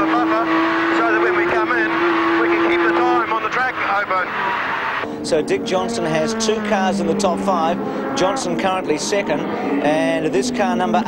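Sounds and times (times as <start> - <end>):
car engine droning: 0.0 - 11.0
driver's voice over radio: 0.0 - 11.0.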